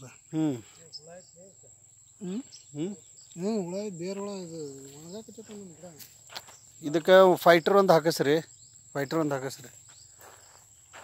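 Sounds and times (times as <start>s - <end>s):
man speaking: 0.0s - 6.1s
insect chorus: 0.0s - 11.0s.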